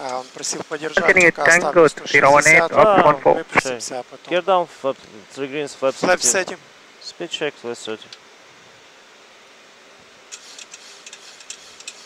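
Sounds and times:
hiss of airflow and air conditioning: 0:00.0 - 0:12.0
faint irregular clicks: 0:10.3 - 0:12.0.

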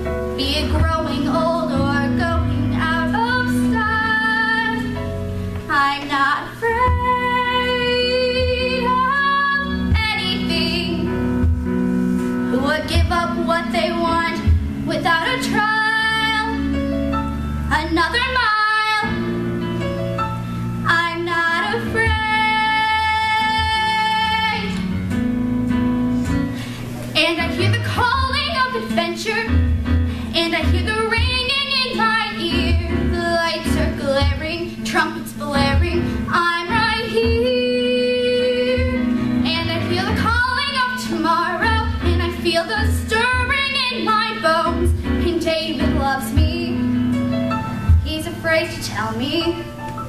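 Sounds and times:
instrumental accompaniment with soft beat: 0:00.0 - 0:50.0
girl singing with vibrato: 0:00.4 - 0:05.0, 0:05.7 - 0:11.1, 0:12.5 - 0:16.8, 0:17.7 - 0:19.2, 0:20.8 - 0:24.9, 0:27.2 - 0:46.9, 0:48.0 - 0:49.7.

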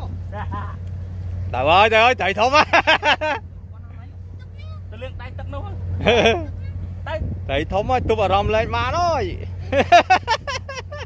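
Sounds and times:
low motor drone: 0:00.0 - 0:11.0.

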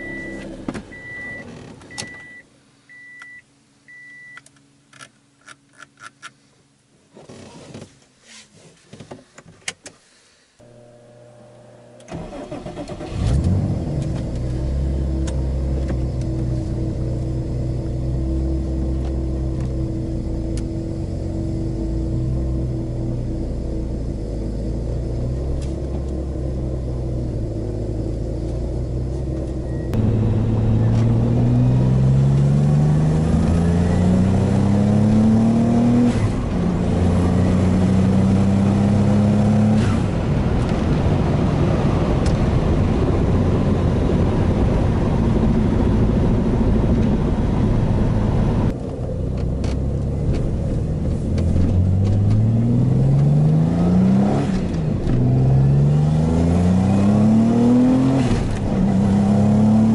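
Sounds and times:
road noise: 0:10.1 - 0:59.9
car engine revving: 0:10.6 - 0:59.9.

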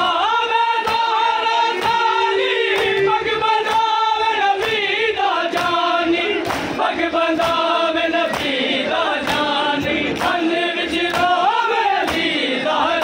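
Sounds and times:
men chanting in unison: 0:00.0 - 0:13.0
hands slapping on chests: 0:00.8 - 0:01.2, 0:05.5 - 0:12.4.

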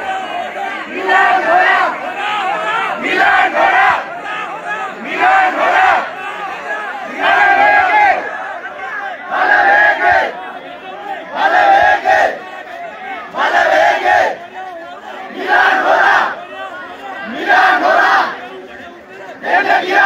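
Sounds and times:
crowd chanting slogan: 0:00.0 - 0:20.0
murmur of voices: 0:00.0 - 0:20.0.

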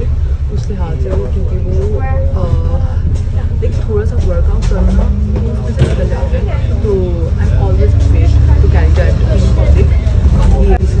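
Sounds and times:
bus engine rumble and road noise: 0:00.0 - 0:11.0
woman talking: 0:00.0 - 0:11.0.

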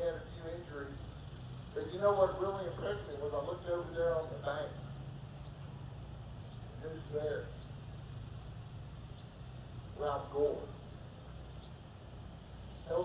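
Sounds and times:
man's voice: 0:00.0 - 0:01.0, 0:01.8 - 0:04.8, 0:06.8 - 0:07.5, 0:10.0 - 0:10.7
steady low hum: 0:00.0 - 0:13.0
insect chirping: 0:00.8 - 0:02.9, 0:05.2 - 0:05.6, 0:06.4 - 0:06.6, 0:07.4 - 0:13.0.

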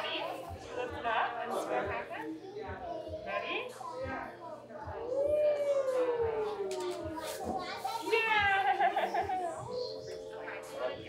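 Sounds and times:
toddler cooing: 0:05.0 - 0:08.1.

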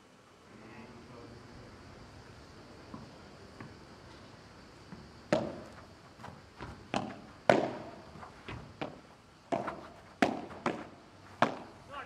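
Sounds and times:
ball bouncing off court and walls: 0:04.9 - 0:11.8
padel rackets hitting ball: 0:05.3 - 0:05.8, 0:06.6 - 0:11.8.

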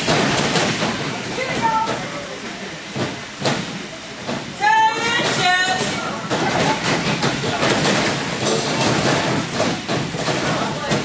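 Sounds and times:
crowd chatter: 0:01.2 - 0:11.0.

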